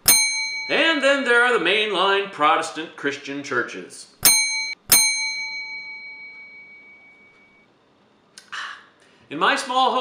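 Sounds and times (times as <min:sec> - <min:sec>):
small bell ding: 0:00.0 - 0:00.9, 0:04.2 - 0:07.7.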